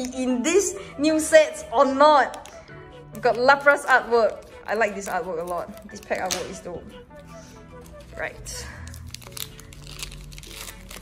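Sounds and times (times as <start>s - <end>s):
soft background music: 0.0s - 11.0s
foil wrapper crinkling: 8.7s - 11.0s.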